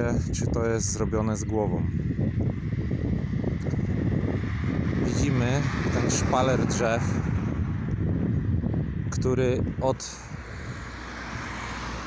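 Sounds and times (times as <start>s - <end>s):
street traffic: 0.0s - 12.0s
wind buffeting microphone: 0.0s - 12.0s.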